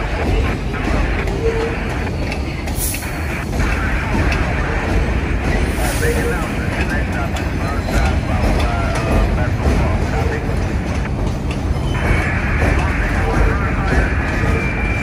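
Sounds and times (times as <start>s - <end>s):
train wheels rumbling: 0.0s - 15.0s.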